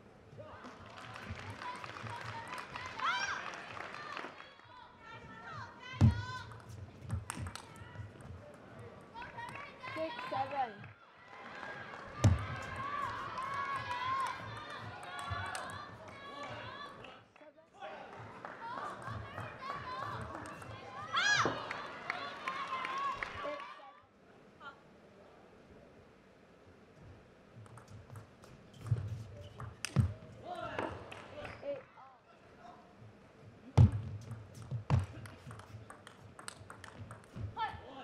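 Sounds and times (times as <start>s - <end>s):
voices in a hall: 0.0s - 38.0s
ping pong ball clicking: 27.6s - 28.3s, 35.5s - 37.4s.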